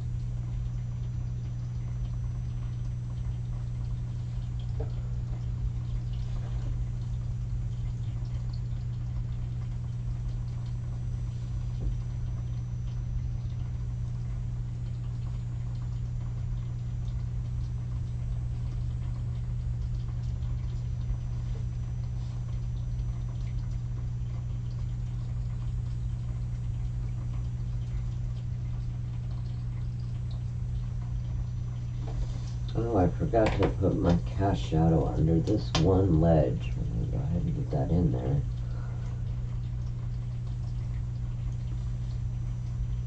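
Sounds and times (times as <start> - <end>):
low hum: 0.0 - 43.0.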